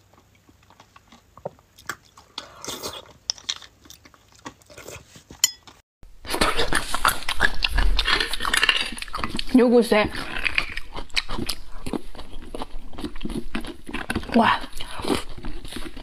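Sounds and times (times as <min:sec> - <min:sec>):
slurping: 0:00.0 - 0:03.3, 0:06.3 - 0:16.0
soft wet chewing: 0:00.0 - 0:16.0.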